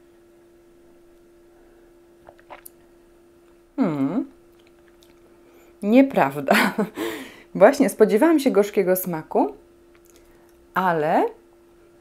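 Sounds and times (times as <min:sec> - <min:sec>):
faint low hum: 0:00.0 - 0:12.0
sipping and lip-smacking: 0:02.2 - 0:02.8, 0:04.5 - 0:05.3
woman humming mmm: 0:03.8 - 0:04.4.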